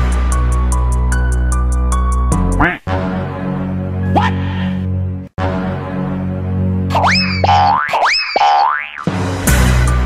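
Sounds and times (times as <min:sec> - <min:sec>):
cartoon boing swoops: 0:06.9 - 0:09.1.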